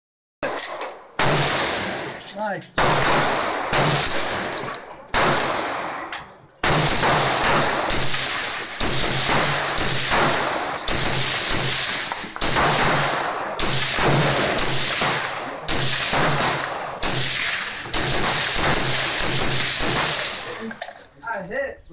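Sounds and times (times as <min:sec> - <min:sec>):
suppressed rifle shots with echo: 0:00.4 - 0:02.2, 0:02.8 - 0:20.6.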